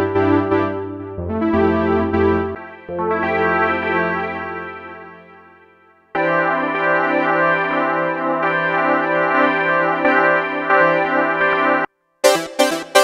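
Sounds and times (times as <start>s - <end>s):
synthesizer held chord: 0.0s - 13.0s.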